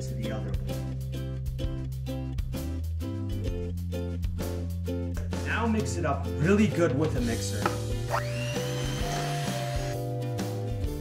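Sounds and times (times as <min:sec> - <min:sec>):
background music: 0:00.0 - 0:11.0
electric hand mixer whine: 0:07.8 - 0:10.0.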